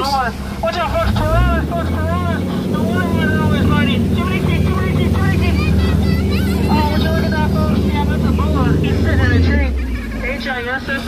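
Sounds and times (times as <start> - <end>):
boat motor humming: 0.0 - 11.0
churning river water: 0.0 - 11.0
voices: 0.0 - 11.0.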